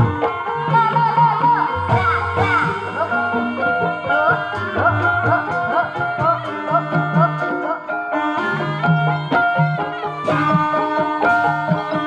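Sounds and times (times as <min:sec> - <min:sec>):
hand drum strokes bending in pitch: 0:00.0 - 0:12.0.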